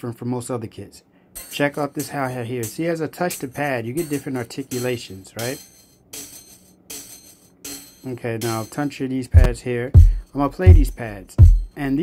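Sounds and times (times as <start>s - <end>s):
hi-hat sample hits: 1.4s - 8.8s, 9.4s - 12.0s.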